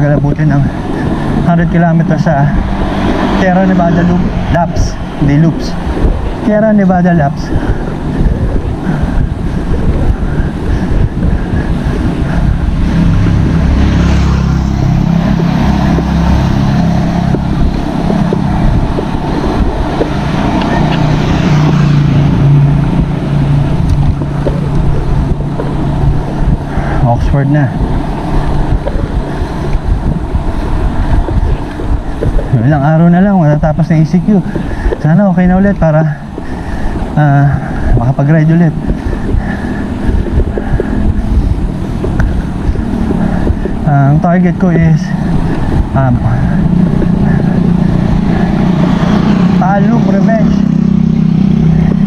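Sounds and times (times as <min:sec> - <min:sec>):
motor vehicle engine hum: 0:00.0 - 0:52.0
wind buffeting microphone: 0:00.0 - 0:52.0.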